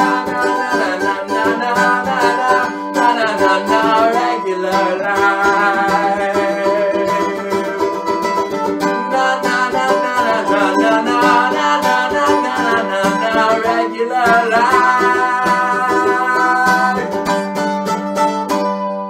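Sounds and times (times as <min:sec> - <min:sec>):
mandolin picked and strummed: 0:00.0 - 0:19.0.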